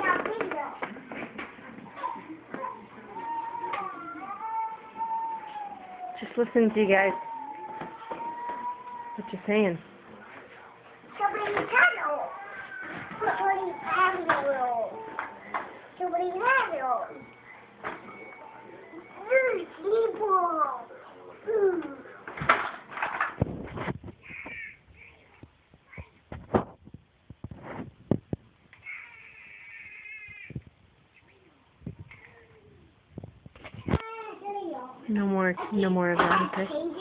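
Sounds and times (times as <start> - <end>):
high-pitched meow-like cry: 28.8 - 30.6.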